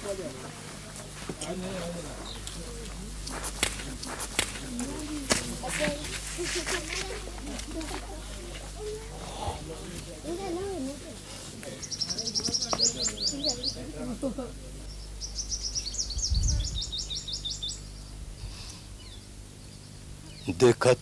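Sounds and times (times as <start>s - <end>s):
low indistinct voices: 0.0s - 15.2s
bird chirping: 11.7s - 13.9s, 14.9s - 18.2s.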